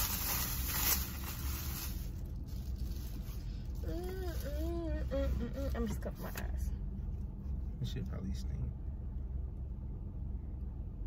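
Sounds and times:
car cabin rumble: 0:00.0 - 0:09.8.

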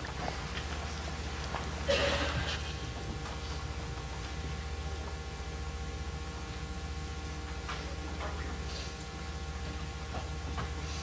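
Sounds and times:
low pulsing electrical buzz: 0:00.0 - 0:11.0.

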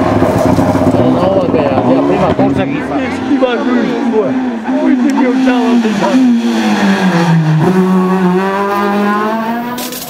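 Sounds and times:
rally car engine revving: 0:00.0 - 0:10.0.

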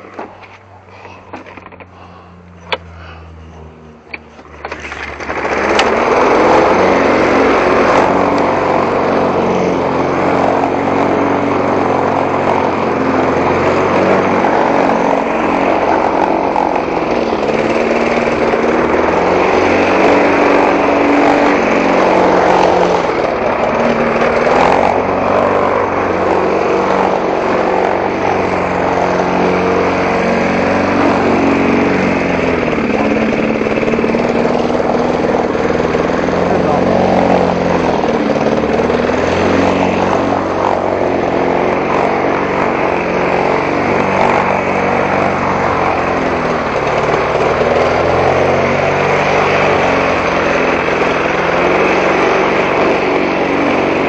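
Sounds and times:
lawn mower engine running: 0:00.0 - 0:54.0.

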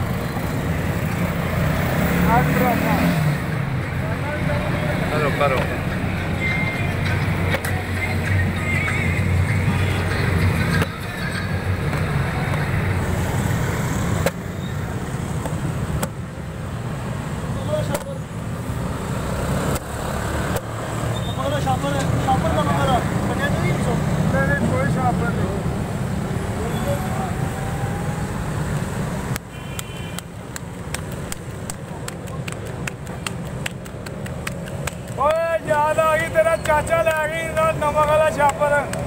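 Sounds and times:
traffic rumble: 0:00.0 - 0:39.0
vehicles passing: 0:00.0 - 0:39.0.

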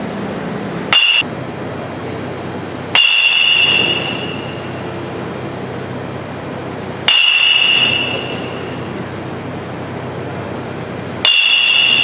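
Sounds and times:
metal bat hitting ball: 0:00.9 - 0:01.3, 0:02.9 - 0:04.7, 0:07.1 - 0:08.8, 0:11.2 - 0:12.0.

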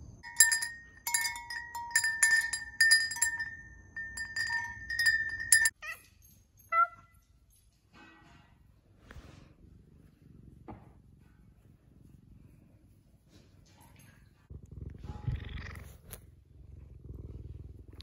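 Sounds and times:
wind chimes ringing: 0:00.2 - 0:06.8.

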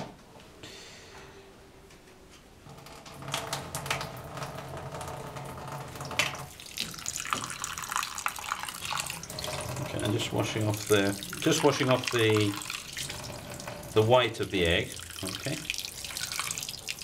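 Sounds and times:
water running into metal sink: 0:03.0 - 0:17.0.

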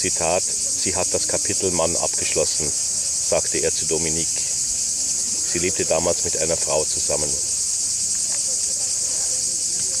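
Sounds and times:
faint distant voices: 0:00.0 - 0:10.0
shrill insects droning: 0:00.0 - 0:10.0.

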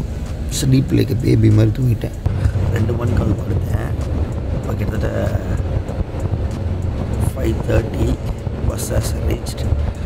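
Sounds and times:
bus rumble from inside: 0:00.0 - 0:10.0.

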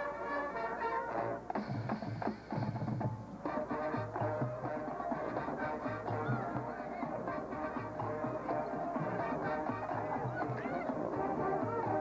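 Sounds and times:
brass chords: 0:00.0 - 0:02.3, 0:03.4 - 0:12.0.

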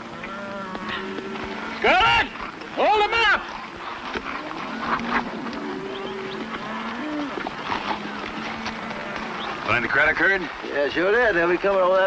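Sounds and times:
cattle mooing: 0:00.0 - 0:10.3
man talking: 0:09.7 - 0:12.0.

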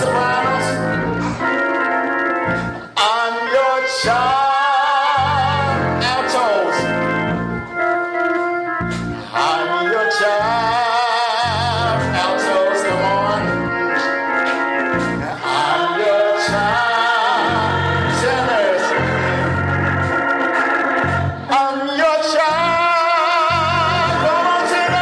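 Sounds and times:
organ playing gospel: 0:00.0 - 0:25.0
person singing with vibrato: 0:00.0 - 0:25.0.

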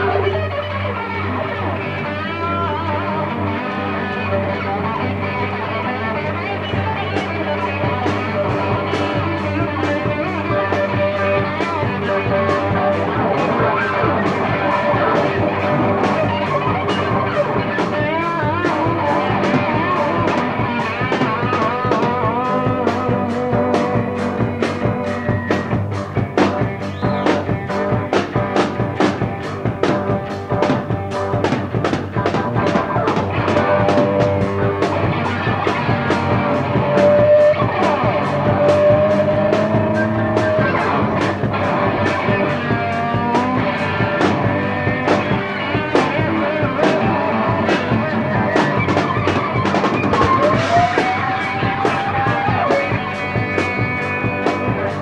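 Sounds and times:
drums steady beat: 0:00.0 - 0:55.0
guitar lines: 0:00.0 - 0:55.0
keyboard lines: 0:00.0 - 0:55.0.

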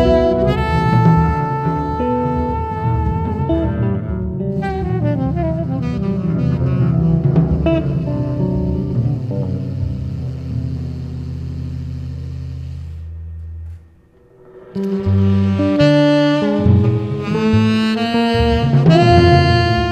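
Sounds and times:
saxophone: 0:00.0 - 0:14.0, 0:14.7 - 0:19.9
double bass: 0:00.0 - 0:19.9
jazz guitar: 0:00.0 - 0:19.9.

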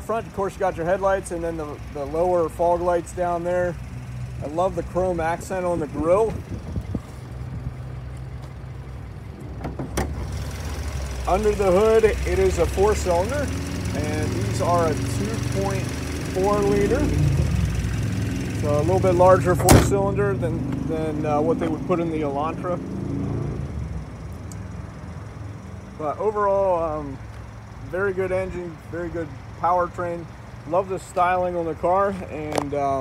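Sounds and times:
vehicle engine rumble: 0:00.0 - 0:33.0
car hood latch clack: 0:09.6 - 0:10.2, 0:19.6 - 0:20.0.

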